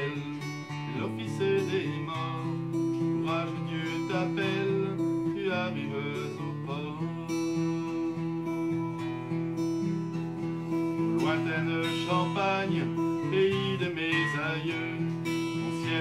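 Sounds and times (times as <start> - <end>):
acoustic guitar strummed: 0.0 - 16.0.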